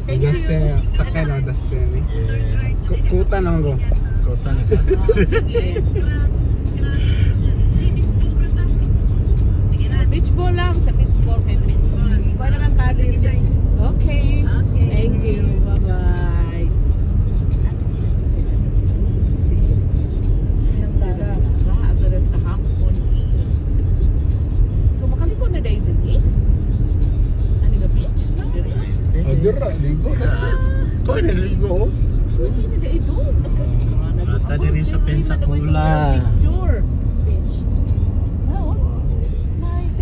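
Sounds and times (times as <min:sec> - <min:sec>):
car road and engine rumble: 0:00.0 - 0:40.0.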